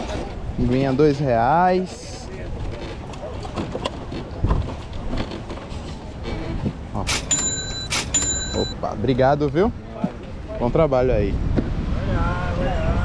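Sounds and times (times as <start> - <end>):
short high ringing tone: 7.1 - 8.8.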